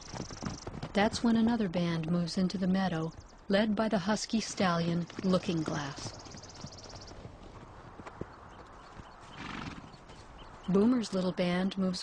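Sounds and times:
horse whinny: 9.4s - 10.0s.

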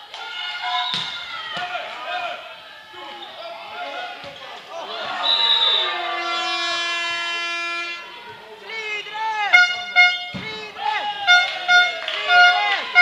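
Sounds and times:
crowd shouting and cheering: 0.0s - 13.0s
long horn blast: 6.1s - 8.1s, 11.3s - 13.0s.

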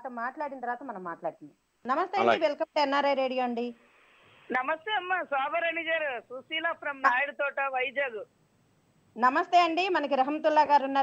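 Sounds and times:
woman talking: 0.0s - 3.8s, 9.2s - 11.0s
faint hiss: 0.0s - 11.0s.

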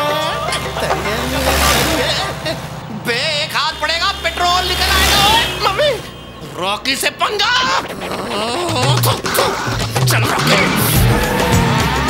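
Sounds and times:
truck rushing past on dirt: 0.0s - 6.6s
steady low drone: 0.0s - 6.9s.

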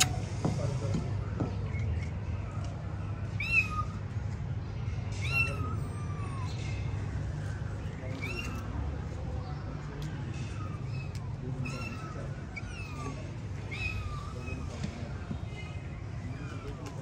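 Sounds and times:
kitten meowing: 3.3s - 4.0s, 5.1s - 6.8s, 8.1s - 8.8s, 10.3s - 14.8s.

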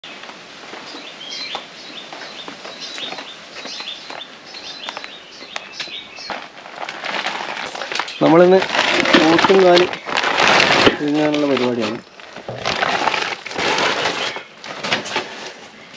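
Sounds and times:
rustling noise: 0.0s - 15.9s
small birds chirping: 0.1s - 6.9s, 7.6s - 10.2s.

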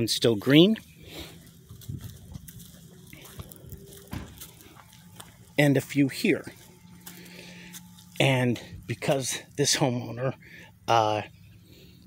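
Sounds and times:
footsteps on mulch and dry leaves: 0.0s - 9.8s.

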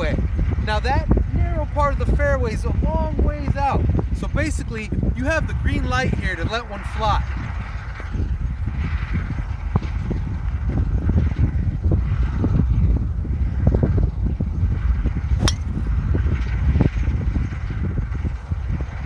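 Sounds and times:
wind rumbling on microphone: 0.0s - 19.0s
golf club striking ball: 15.4s - 15.9s.

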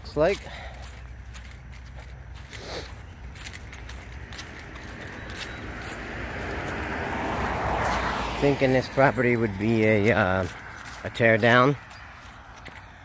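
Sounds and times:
footsteps on grass: 0.0s - 13.0s.

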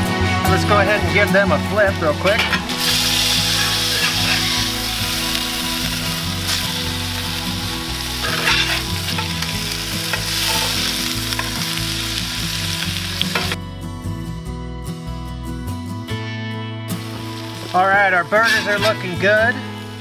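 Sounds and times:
burger patties sizzling on griddle: 2.1s - 13.6s, 17.0s - 20.0s
metal spatula pressing patties: 8.2s - 9.2s.

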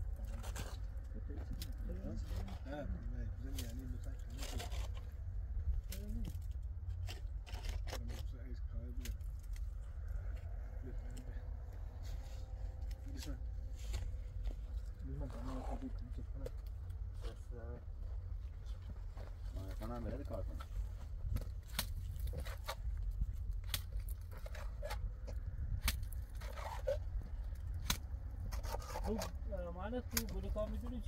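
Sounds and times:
steady low rumble: 0.0s - 28.6s
men talking: 1.1s - 5.0s, 7.9s - 9.3s, 10.2s - 18.2s, 19.2s - 20.7s, 29.0s - 31.0s
short clicks and scrapes: 23.6s - 29.4s.

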